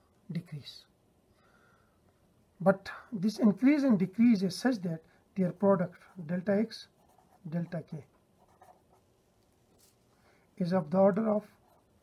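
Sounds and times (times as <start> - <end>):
pen writing on paper: 8.4 - 9.0.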